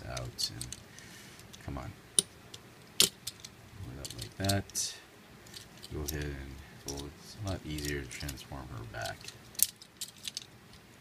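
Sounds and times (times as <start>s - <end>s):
plastic toy parts clicking: 7.7s - 8.4s, 9.0s - 10.5s.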